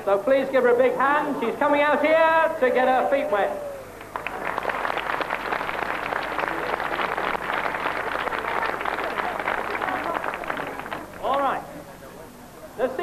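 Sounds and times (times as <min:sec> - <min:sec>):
crowd applauding: 0:03.7 - 0:11.4.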